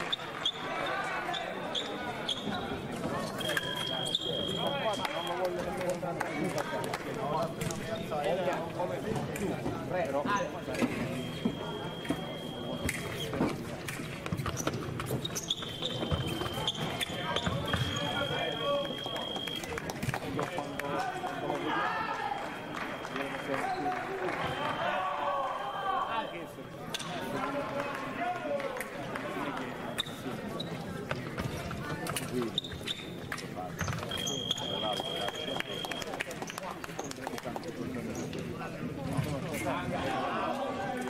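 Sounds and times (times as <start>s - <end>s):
voices in hall: 0.0s - 41.0s.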